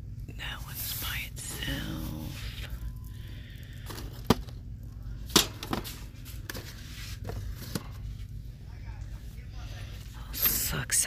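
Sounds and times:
steady low hum: 0:00.0 - 0:11.0
boxes and shelving clicking: 0:05.3 - 0:08.1.

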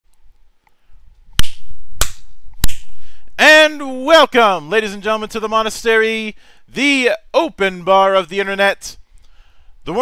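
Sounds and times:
person speaking: 0:03.3 - 0:09.0.

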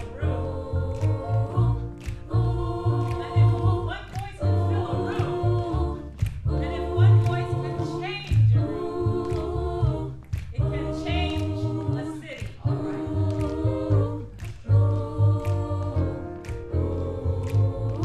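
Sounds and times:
choir singing soul ballad: 0:00.0 - 0:18.0
deep bass line: 0:00.0 - 0:18.0.

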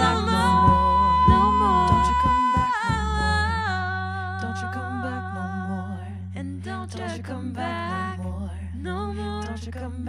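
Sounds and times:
low bass note: 0:00.0 - 0:04.4
layered female vocals humming: 0:00.0 - 0:10.0.

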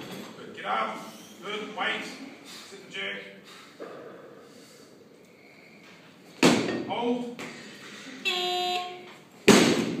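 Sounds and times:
brief steady tone: 0:08.2 - 0:09.0.

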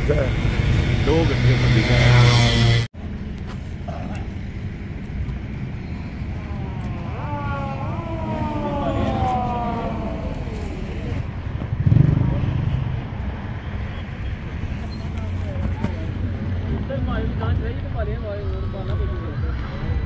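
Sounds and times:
cars running: 0:00.0 - 0:20.0
people talking: 0:01.0 - 0:02.4, 0:06.4 - 0:11.2, 0:15.1 - 0:20.0.

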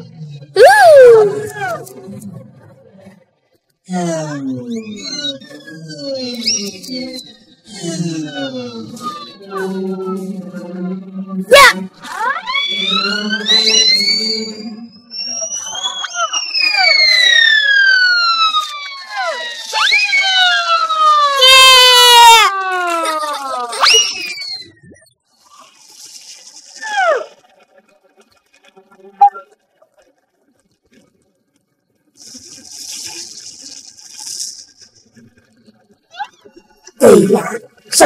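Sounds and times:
cartoon falling whistles: 0:00.6 - 0:01.8, 0:06.2 - 0:07.3, 0:11.5 - 0:22.6, 0:23.7 - 0:24.9, 0:26.7 - 0:27.4
warbling whistle: 0:00.6 - 0:02.0, 0:04.8 - 0:09.6, 0:11.5 - 0:22.7, 0:23.7 - 0:27.4, 0:29.2 - 0:29.5.

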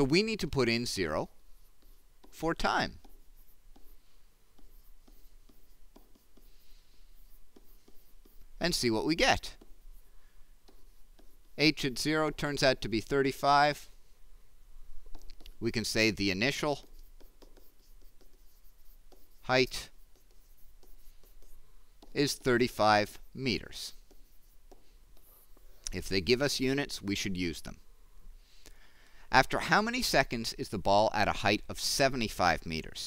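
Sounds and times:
stylus tapping and scratching on tablet: 0:00.0 - 0:13.8, 0:14.9 - 0:27.6.

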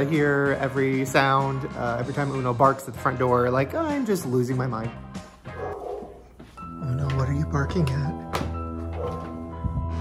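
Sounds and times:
background music: 0:00.0 - 0:10.0
dog barking: 0:05.5 - 0:06.3, 0:08.9 - 0:09.4.

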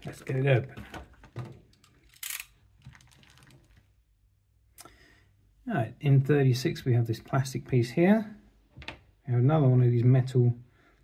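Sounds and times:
small parts clicking: 0:01.7 - 0:02.6.

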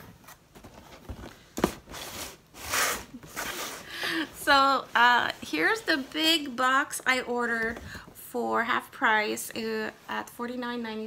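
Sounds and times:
cardboard scraping: 0:00.0 - 0:03.9.

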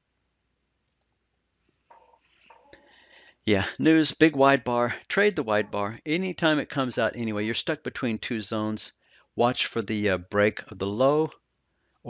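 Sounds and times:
faint computer mouse clicks: 0:00.9 - 0:01.2.

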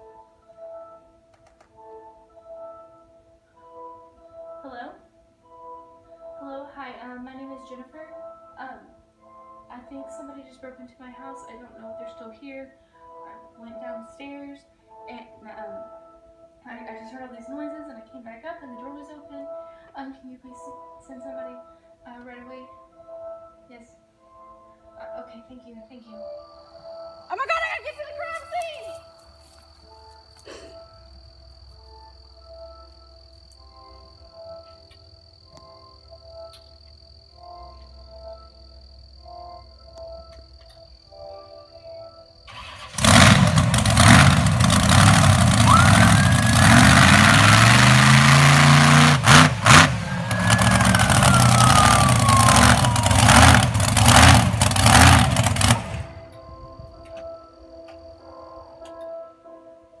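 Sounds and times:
quiet soundtrack music: 0:00.0 - 0:45.5, 0:56.0 - 1:00.0
car engine revving: 0:42.5 - 0:56.3.

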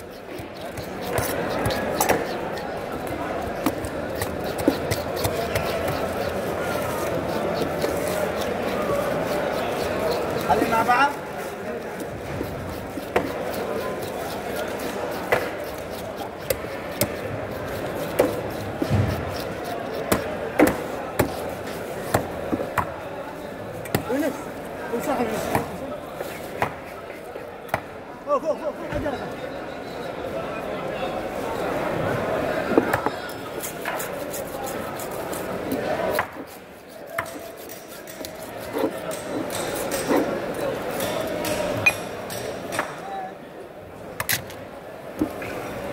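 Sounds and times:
scaler scraping fish scales: 0:00.0 - 0:22.2, 0:33.4 - 0:41.6.

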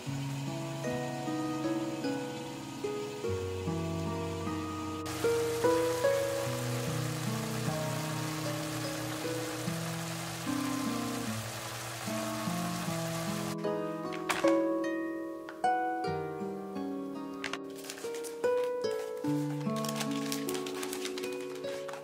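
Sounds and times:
food sizzling in covered pan: 0:00.0 - 0:14.6, 0:19.0 - 0:22.0
slow instrumental background music: 0:00.0 - 0:22.0.

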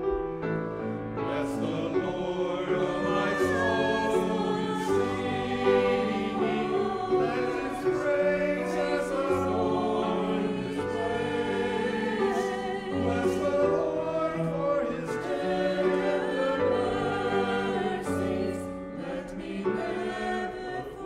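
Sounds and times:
mixed choir singing a hymn: 0:00.0 - 0:21.0.

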